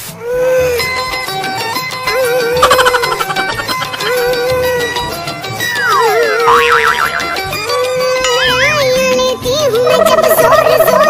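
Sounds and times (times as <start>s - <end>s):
background music: 0.0s - 11.0s
wobbling boing: 2.6s - 4.6s, 5.7s - 8.8s
whistle sliding down in pitch: 5.7s - 7.5s.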